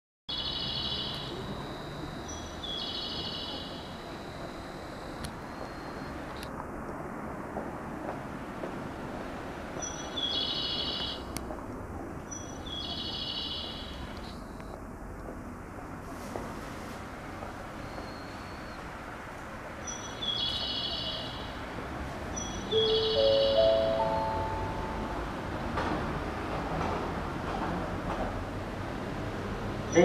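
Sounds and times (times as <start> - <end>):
recorded bird chirping from speaker: 0.3 - 4.9, 9.8 - 11.3, 12.3 - 14.7, 19.8 - 21.6, 22.3 - 24.5
platform background noise: 0.3 - 6.5, 22.4 - 25.8.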